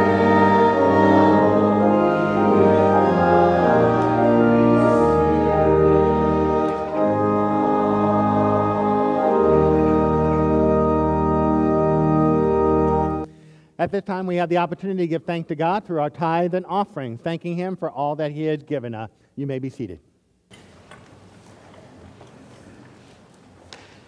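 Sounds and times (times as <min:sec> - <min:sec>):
church organ chords: 0:00.0 - 0:13.3.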